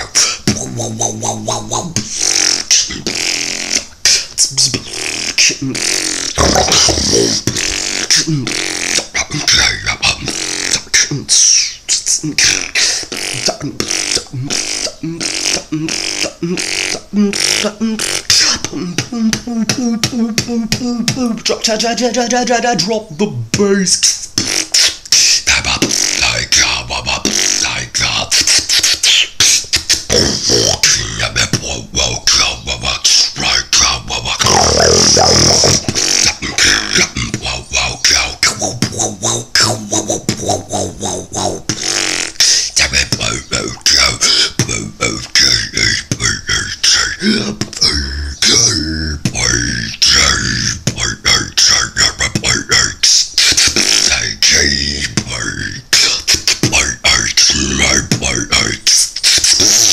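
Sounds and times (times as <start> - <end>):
beatboxing vocal-bass growls: 0.0 - 59.9.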